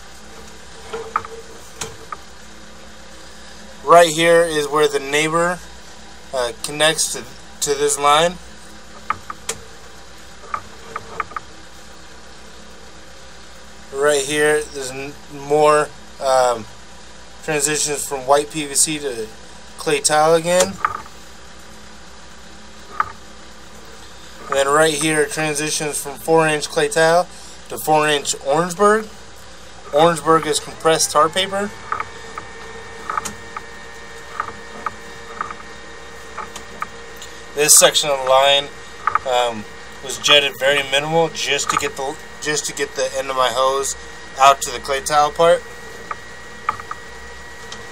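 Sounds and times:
camera reel low hum: 0.0 - 5.5, 6.4 - 12.0, 20.0 - 47.9
cable light clicks and ticks: 22.9 - 23.2, 31.8 - 35.7, 36.3 - 37.3, 38.1 - 39.3, 41.6 - 42.0, 46.0 - 47.0.

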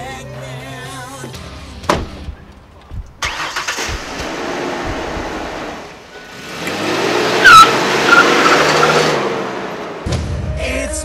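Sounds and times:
car engine starting and revving: 3.2 - 10.4.

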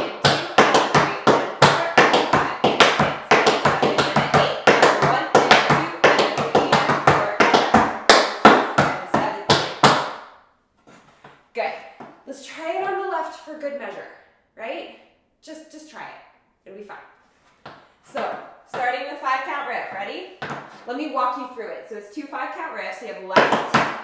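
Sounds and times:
tap shoes on wooden board: 0.2 - 10.2, 17.6 - 17.9, 19.9 - 20.8.

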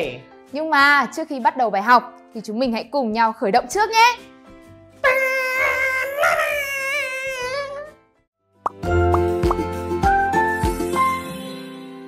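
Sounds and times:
cartoon plop: 8.7 - 9.7.

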